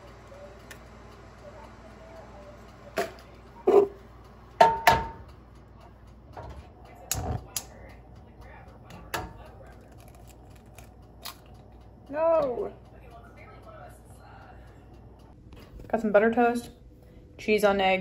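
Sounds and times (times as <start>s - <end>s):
eggs tapped on skillet: 4.6s - 5.3s.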